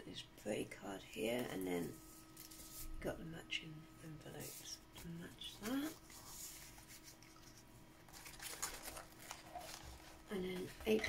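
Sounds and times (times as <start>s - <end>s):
paper cards rustling: 4.4s - 11.0s
page turning: 5.5s - 11.0s.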